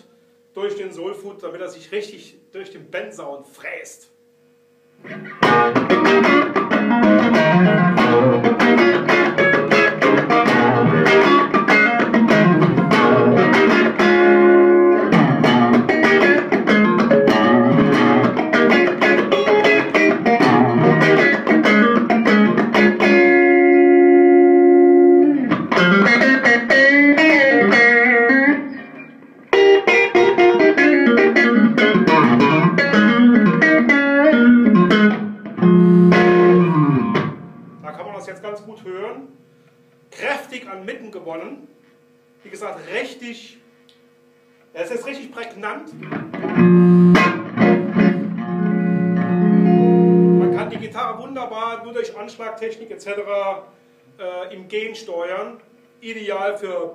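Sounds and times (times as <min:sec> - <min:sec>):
overdriven electric guitar: 0:05.0 - 0:37.8, 0:45.9 - 0:50.9.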